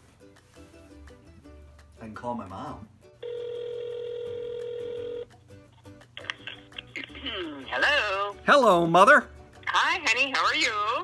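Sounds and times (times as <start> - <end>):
telephone ringback tone: 3.2 - 5.3.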